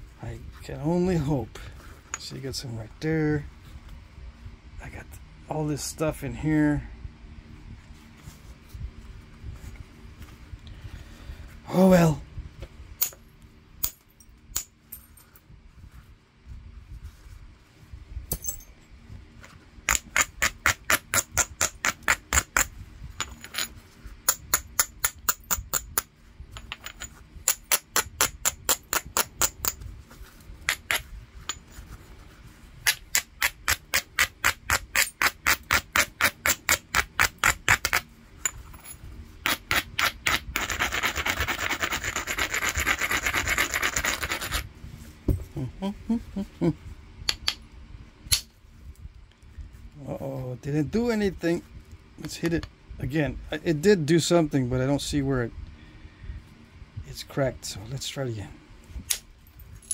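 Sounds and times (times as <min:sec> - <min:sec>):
stone being rubbed: 0:39.5 - 0:44.6.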